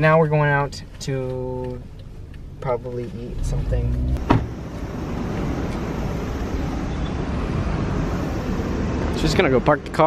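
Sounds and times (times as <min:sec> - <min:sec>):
road traffic passing: 0:00.0 - 0:10.0
short knock: 0:04.2 - 0:04.5.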